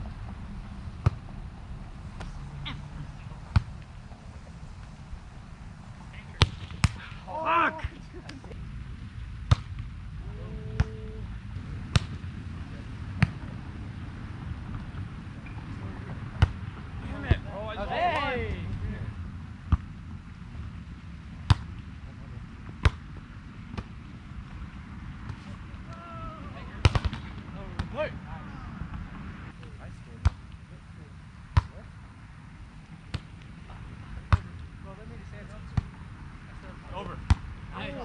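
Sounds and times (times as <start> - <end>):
low background noise: 0.0 - 38.0
volleyball slaps: 2.1 - 2.4, 6.4 - 7.2, 9.5 - 9.9, 11.9 - 12.2, 21.4 - 21.8, 22.8 - 23.0, 26.8 - 28.0, 32.8 - 33.5.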